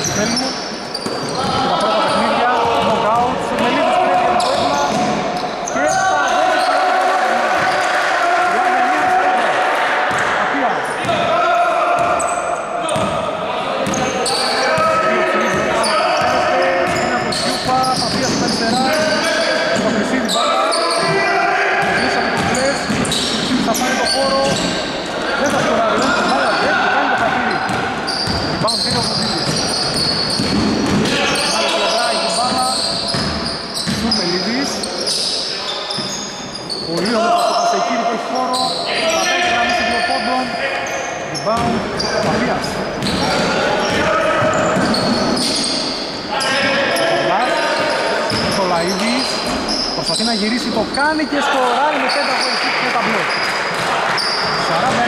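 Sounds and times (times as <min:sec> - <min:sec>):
shoes squeaking: 0:00.0 - 0:06.8, 0:13.8 - 0:51.4, 0:52.0 - 0:55.0
basketball bouncing on wooden floor: 0:27.2 - 0:31.1, 0:33.1 - 0:34.1.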